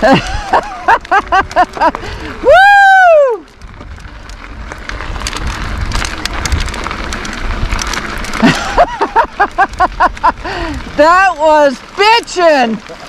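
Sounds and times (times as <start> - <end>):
person laughing: 0.0 - 2.2, 8.4 - 10.8
bike clicks and rattles: 0.0 - 13.0
tyres crunching over gravel: 0.0 - 13.0.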